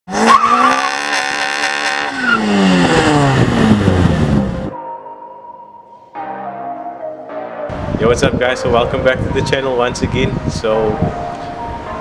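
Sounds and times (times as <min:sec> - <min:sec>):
car engine running hard: 0:00.1 - 0:04.7.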